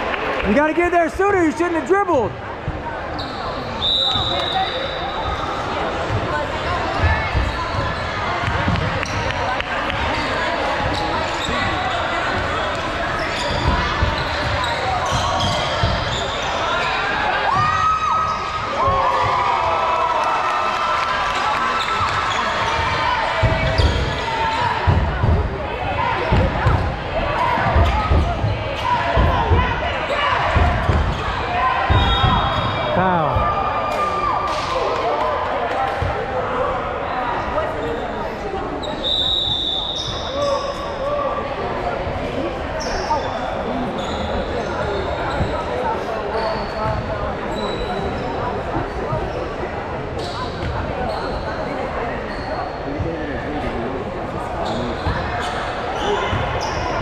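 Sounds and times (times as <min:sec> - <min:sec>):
echoing crowd chatter: 0:00.0 - 0:57.0.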